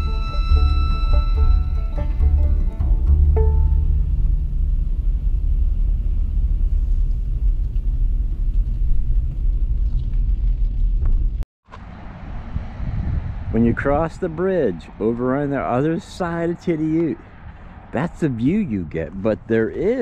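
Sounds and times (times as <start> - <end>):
background music: 0.0 - 4.9
road rumble inside car: 3.4 - 14.0.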